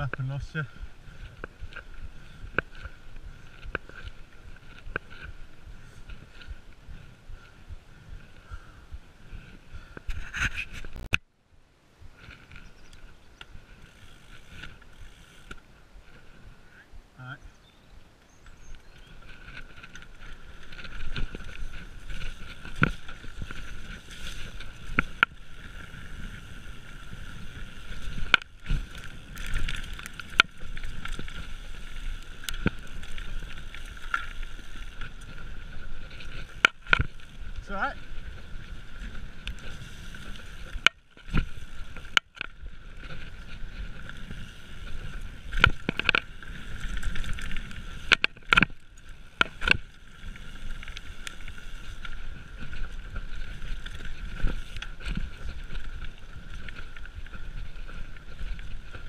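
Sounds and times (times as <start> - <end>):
bike tyres on dirt trail: 0.0 - 11.2, 11.8 - 59.0
bike knocking and rattling: 12.2 - 16.4, 18.3 - 59.0.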